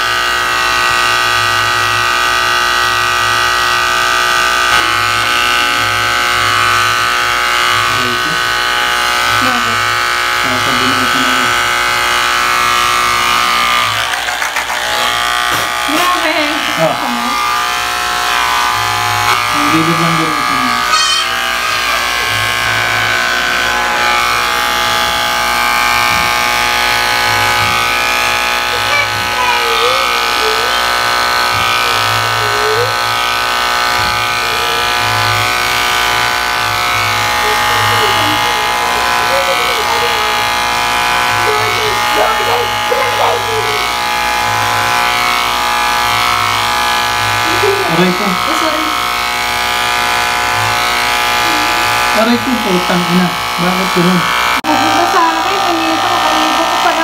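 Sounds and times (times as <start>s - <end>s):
electric hair clippers buzzing: 0.0s - 57.0s.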